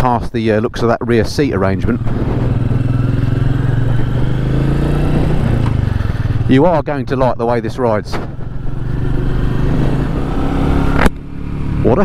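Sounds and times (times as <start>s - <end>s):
motorcycle engine running: 1.6s - 12.0s.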